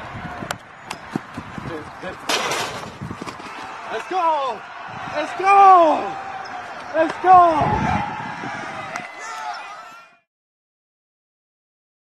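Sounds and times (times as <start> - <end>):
loud rush of noise: 0.0 - 9.2
person shouting excitedly: 3.9 - 6.2, 6.9 - 8.1.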